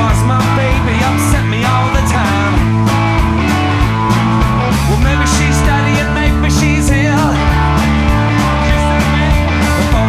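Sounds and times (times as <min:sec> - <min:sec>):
electric guitar bent notes: 0:00.0 - 0:10.0
live rock band playing: 0:00.0 - 0:10.0.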